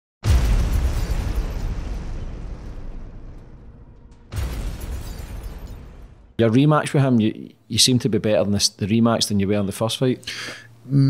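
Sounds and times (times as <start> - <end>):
deep rumble: 0.2 - 6.4
explosion boom: 0.2 - 6.4.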